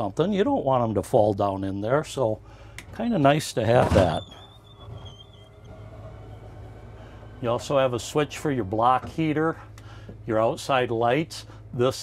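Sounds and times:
generator humming: 1.9 - 12.0
faint wavering high whine: 2.9 - 11.9.

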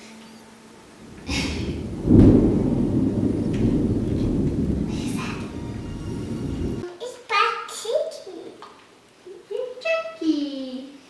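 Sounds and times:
loud low rumble: 1.0 - 6.8.

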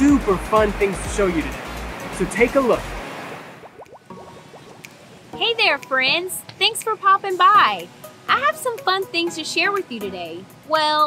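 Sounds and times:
rising bubbly tones: 2.9 - 5.6.

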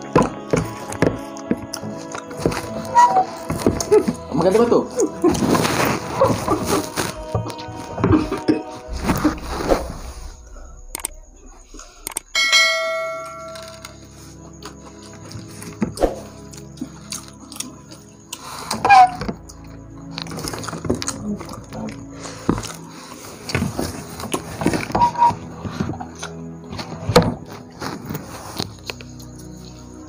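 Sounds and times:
background music: 0.0 - 30.0
bright bell chime: 12.3 - 14.1.

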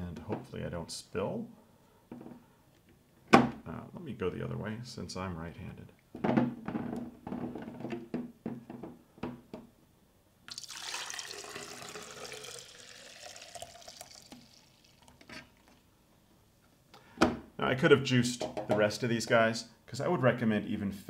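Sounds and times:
juice pouring into plastic container: 10.5 - 15.9.

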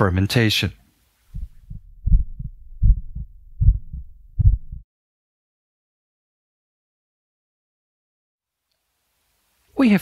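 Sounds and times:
deep heartbeat thumps: 1.3 - 4.8.

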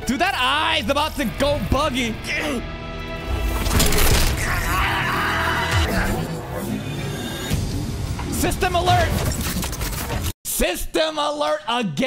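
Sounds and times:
music: 0.0 - 9.3
wavering cry-like sound effect: 4.3 - 6.9.

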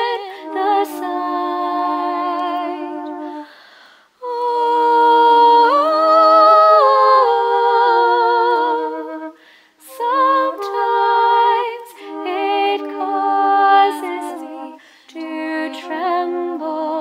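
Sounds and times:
voices humming a hymn in harmony: 0.0 - 3.5, 4.4 - 17.0
short breath: 3.4 - 4.2, 9.4 - 9.8, 14.8 - 15.2.

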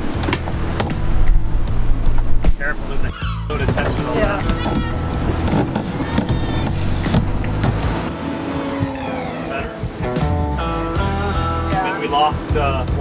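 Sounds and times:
background music with bass line: 0.0 - 13.0.

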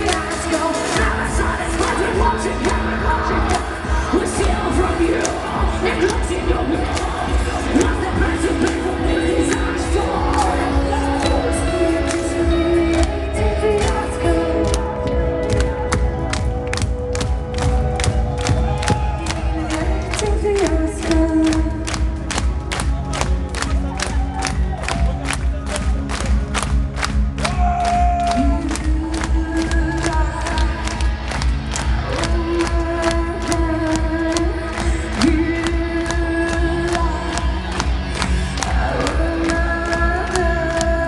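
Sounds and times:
crowd noise: 0.0 - 41.0.

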